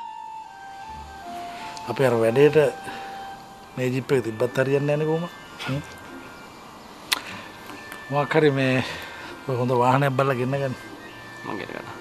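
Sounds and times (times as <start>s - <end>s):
thin steady tones: 0.0s - 12.0s.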